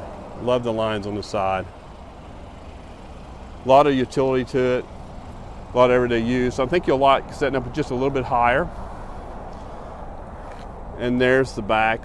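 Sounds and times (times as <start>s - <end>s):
vehicle noise rumble and hiss: 0.0s - 12.0s.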